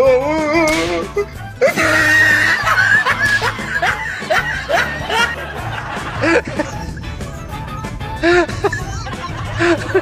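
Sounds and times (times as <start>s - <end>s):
background music: 0.0s - 10.0s
person laughing: 0.9s - 10.0s.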